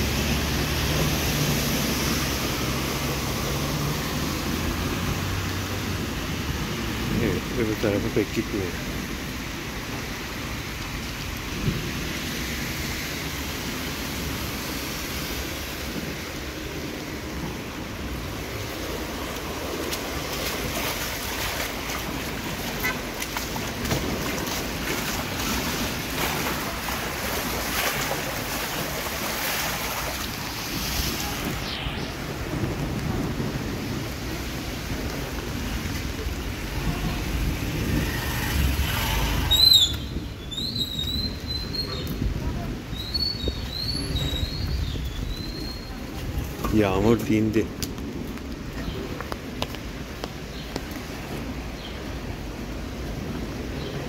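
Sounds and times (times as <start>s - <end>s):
rainwater running over street: 0.0s - 54.0s.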